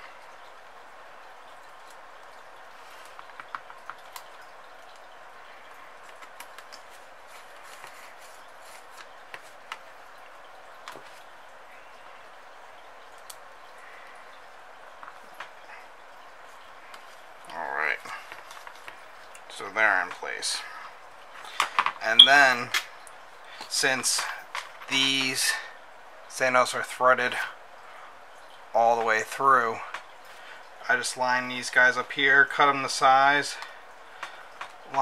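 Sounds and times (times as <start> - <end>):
steady hiss: 0.0 - 35.0.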